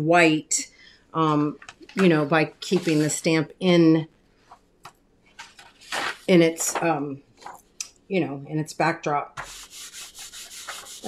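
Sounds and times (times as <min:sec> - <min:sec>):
soft handling noise: 0:01.6 - 0:03.3, 0:04.4 - 0:07.8.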